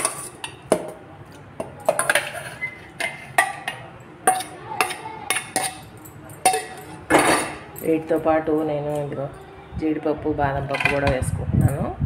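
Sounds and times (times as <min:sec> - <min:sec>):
steel bowl clinking on jar: 0:01.8 - 0:09.1.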